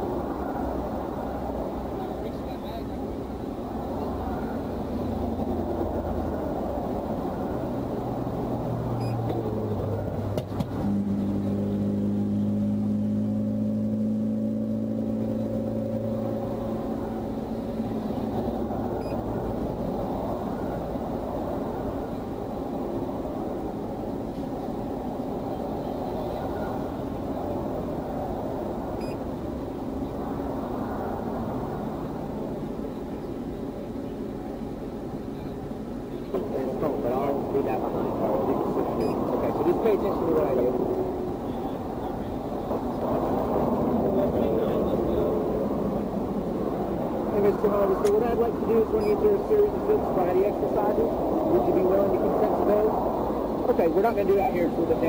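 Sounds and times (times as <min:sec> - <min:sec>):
passing vehicle engine drone: 0:00.0 - 0:55.0
roadside traffic rumble: 0:00.0 - 0:55.0.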